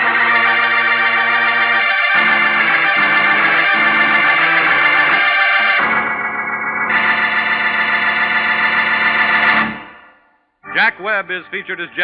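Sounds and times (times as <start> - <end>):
organ chords: 0.0 - 12.0.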